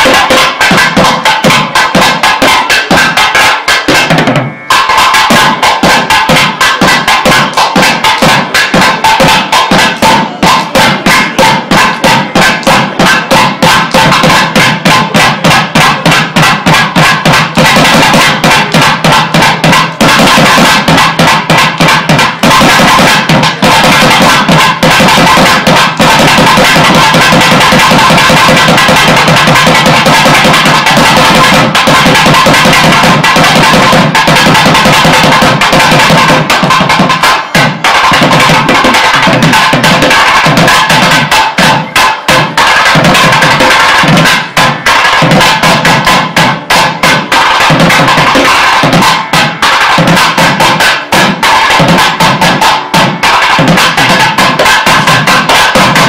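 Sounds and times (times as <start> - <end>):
barrel drums playing fast rhythm: 0.0 - 56.0.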